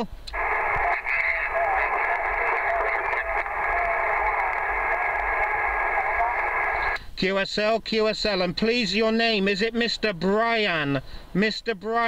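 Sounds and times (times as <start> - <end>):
distorted radio voice: 0.0 - 7.0
radio band noise: 0.0 - 7.0.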